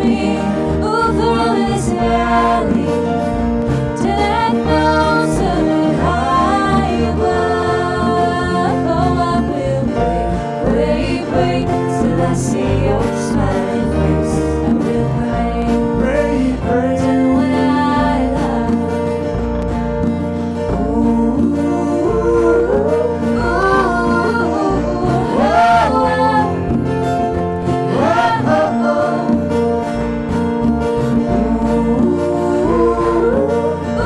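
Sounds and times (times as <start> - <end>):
voices singing: 0.0 - 19.4, 20.6 - 30.0, 31.1 - 34.0
electric bass line: 0.0 - 34.0
strummed acoustic guitars: 0.0 - 34.0.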